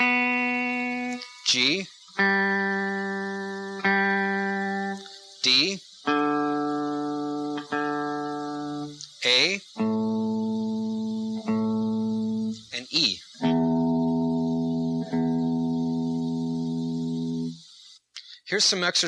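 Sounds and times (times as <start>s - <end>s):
electric guitar strings plucked: 0.0s - 12.8s, 13.4s - 17.6s.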